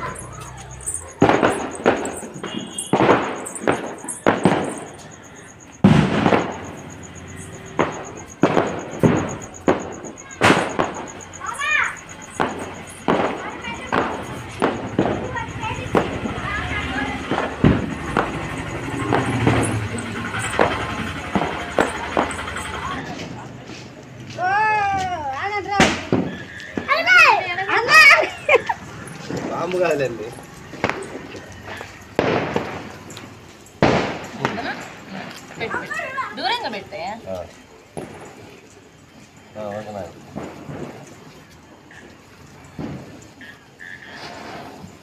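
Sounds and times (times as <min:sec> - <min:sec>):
firecrackers bursting: 0:00.0 - 0:45.0.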